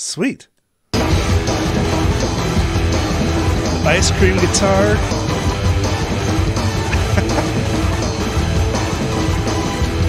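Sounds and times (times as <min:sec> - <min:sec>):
hard rock band playing: 0:01.0 - 0:10.0.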